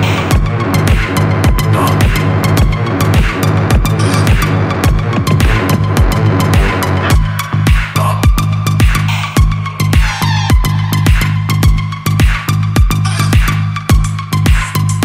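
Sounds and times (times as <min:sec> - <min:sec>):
drum machine kick: 0:00.0 - 0:14.7
dark techno music: 0:00.0 - 0:15.0
synth bass drone: 0:00.0 - 0:15.0.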